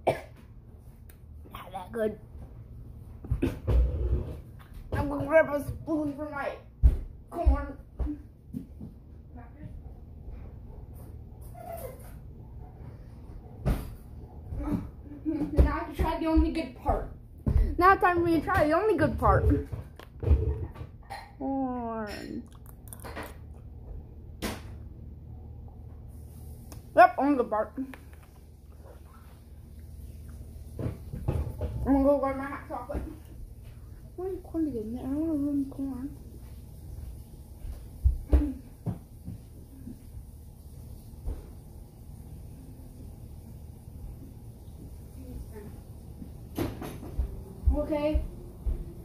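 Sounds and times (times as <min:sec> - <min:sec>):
low steady hum: 0:00.0 - 0:49.0.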